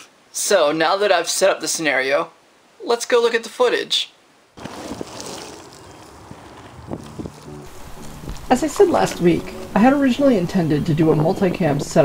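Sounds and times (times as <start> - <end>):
wind on microphone: 4.6 - 8.5
wheels rolling over rough asphalt: 4.6 - 12.0.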